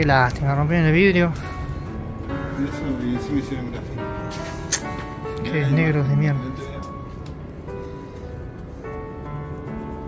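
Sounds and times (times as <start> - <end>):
sharp click: 4.7 - 5.0.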